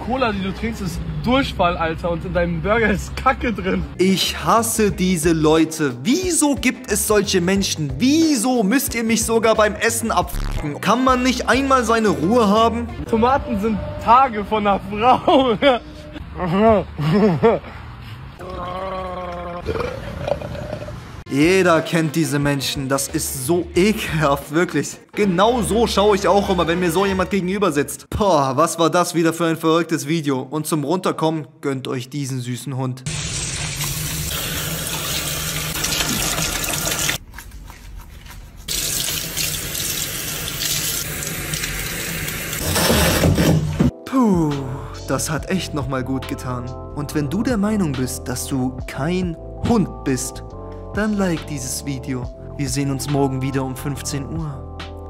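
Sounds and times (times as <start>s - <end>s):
man making drawn-out vocal noise: 18.4s - 20.9s
tap water running into sink: 33.1s - 37.2s, 38.7s - 42.7s.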